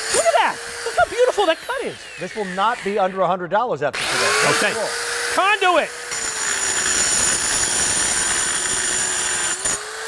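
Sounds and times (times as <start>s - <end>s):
circular saw motor whine: 0.0s - 3.2s.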